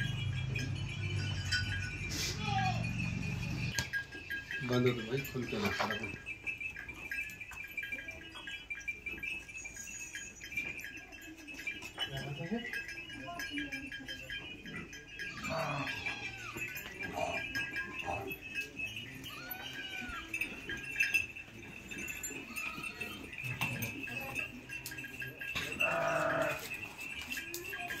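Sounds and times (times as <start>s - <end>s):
goat bleating: 15.2s - 18.4s, 19.2s - 20.9s, 25.6s - 26.7s.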